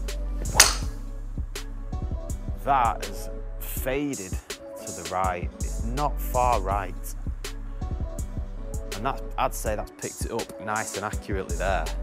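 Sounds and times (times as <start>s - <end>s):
background music with steady beat: 0.0s - 12.0s
golf club striking ball: 0.4s - 1.0s.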